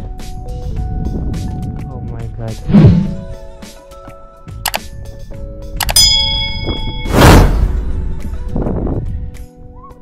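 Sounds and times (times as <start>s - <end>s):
background music: 0.0s - 10.0s
mouse clicks: 4.7s - 4.9s, 5.8s - 6.0s
bright bell ding: 5.8s - 7.4s.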